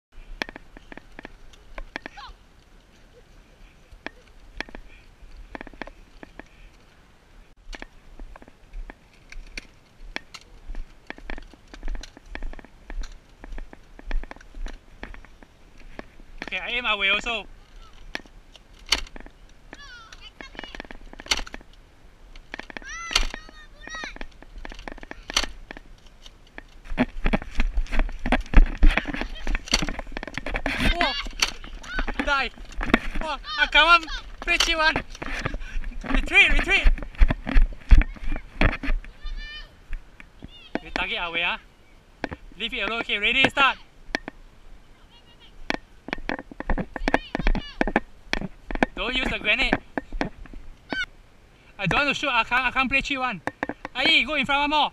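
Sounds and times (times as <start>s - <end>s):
sharp clicks and knocks: 0.4s - 2.2s, 4.0s - 6.6s, 7.7s - 39.2s, 42.2s - 44.4s, 45.6s - 51.1s, 53.4s - 54.3s
handling thumps and knocks: 7.7s - 16.8s, 17.8s - 21.8s, 22.4s - 39.2s, 45.6s - 51.1s, 53.4s - 54.3s
high-pitched voice calling out: 19.8s - 20.8s, 22.8s - 24.2s.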